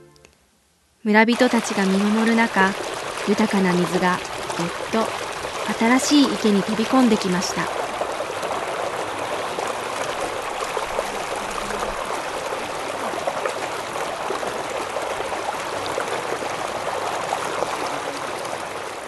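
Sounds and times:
water babbling in channel: 1.1 - 19.0.

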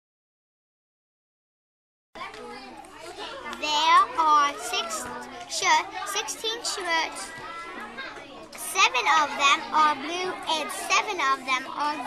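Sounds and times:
children's voices: 2.2 - 12.0
girl talking: 2.2 - 12.0.

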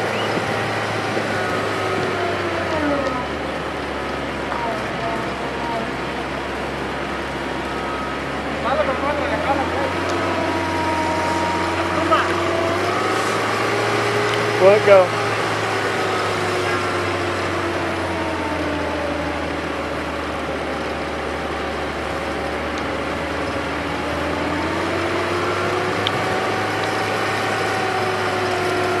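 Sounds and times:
gasoline engine running: 0.0 - 29.0.

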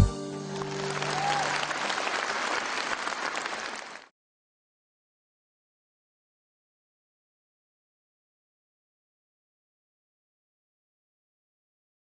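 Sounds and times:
band held chord: 0.0 - 1.0
audience applauding: 0.3 - 4.1.

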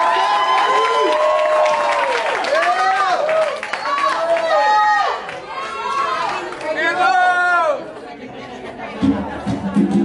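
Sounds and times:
audience chatter: 3.8 - 10.0.

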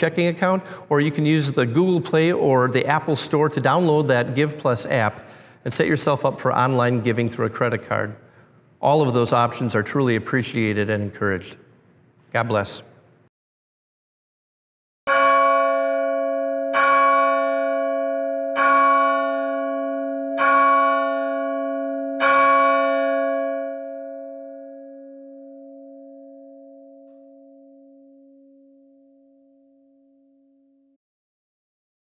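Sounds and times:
church bell strokes: 15.1 - 29.2.

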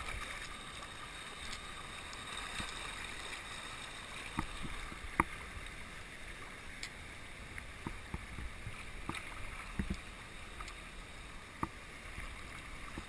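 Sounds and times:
river water rushing: 0.0 - 13.0.

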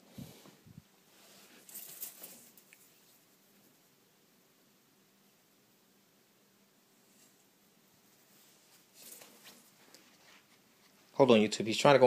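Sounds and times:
faint rustling: 0.0 - 3.9, 6.9 - 11.5.

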